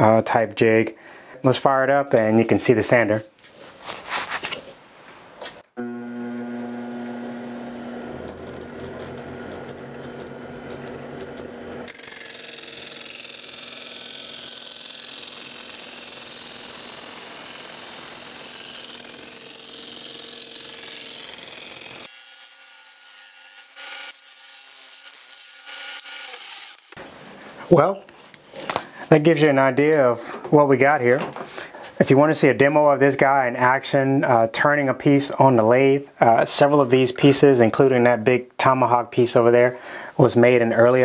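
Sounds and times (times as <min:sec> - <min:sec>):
electric motor humming: 0:05.8 - 0:27.0.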